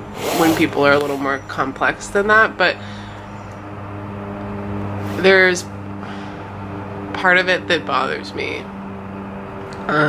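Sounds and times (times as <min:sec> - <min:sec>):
hiss: 0:00.0 - 0:01.2
steady low hum: 0:00.0 - 0:09.6.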